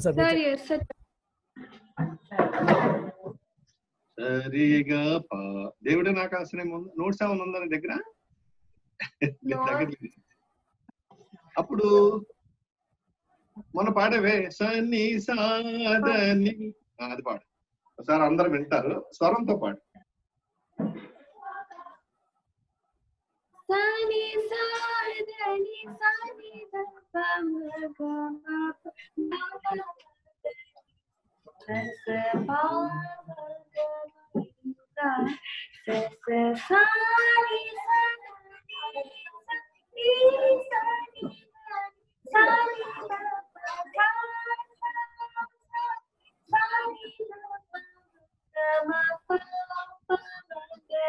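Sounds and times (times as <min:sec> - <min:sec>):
high solo singing voice: 0:09.2 - 0:10.1, 0:31.7 - 0:34.1, 0:35.1 - 0:41.5, 0:42.3 - 0:47.6
man singing held notes: 0:09.2 - 0:10.1.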